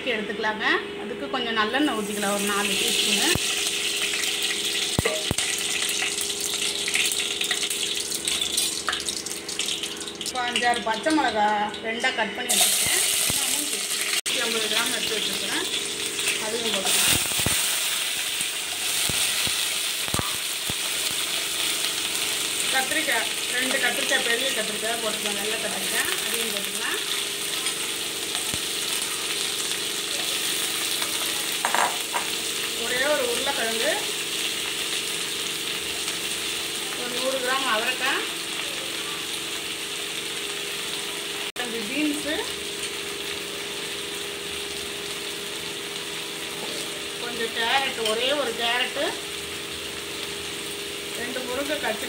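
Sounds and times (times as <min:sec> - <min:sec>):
shallots and chillies sizzling in oil: 0:00.0 - 0:52.0.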